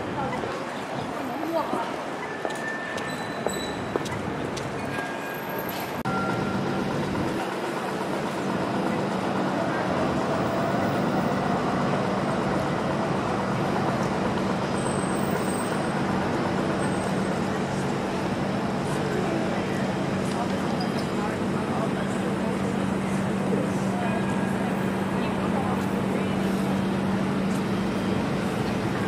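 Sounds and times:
city street traffic: 0.0 - 29.0.

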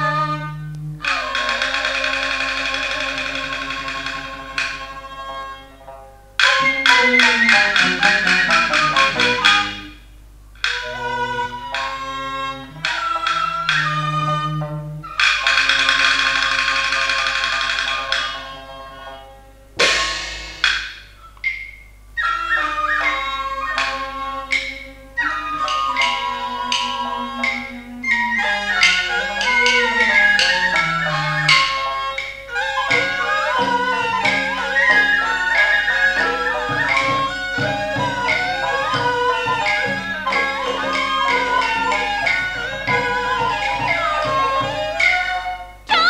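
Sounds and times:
fiddles and flute held notes: 0.0 - 21.4, 22.1 - 46.0
plucked and bowed melody: 0.0 - 21.6, 22.2 - 46.0
opera instrumental accompaniment: 0.0 - 46.0
sharp percussion strikes: 6.4 - 10.0, 19.8 - 45.8.

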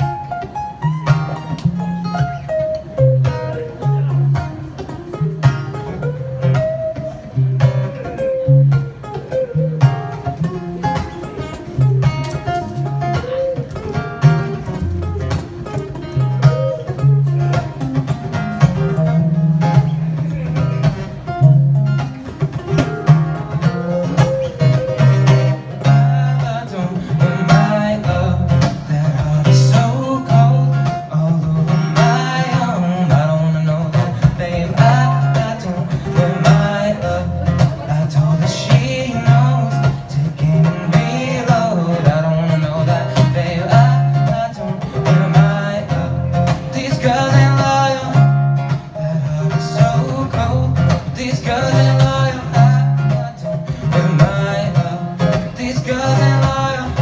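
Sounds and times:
acoustic and electric guitars playing: 0.0 - 57.0
low bass notes: 0.0 - 57.0.

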